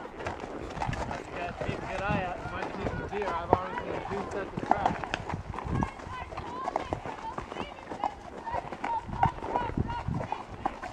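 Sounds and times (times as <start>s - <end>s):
horse hooves clip-clopping on dirt: 0.0s - 10.9s
riders talking: 0.8s - 10.9s.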